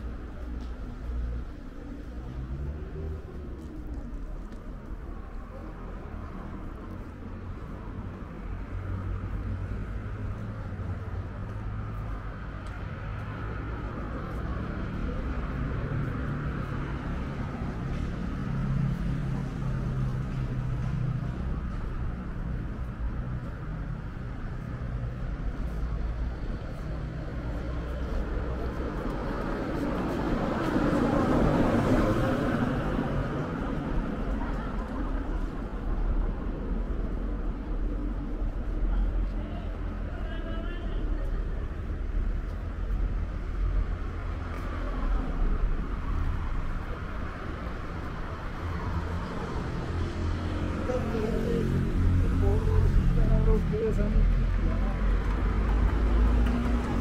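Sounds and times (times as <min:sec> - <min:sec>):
traffic rumble: 0:00.0 - 0:57.0
voices: 0:00.0 - 0:57.0
vehicle passing: 0:42.8 - 0:57.0.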